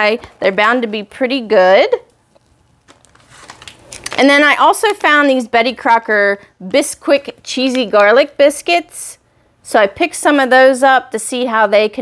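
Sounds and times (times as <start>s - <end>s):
soft crackle: 2.0s - 5.2s
packaging rustling: 2.3s - 5.2s.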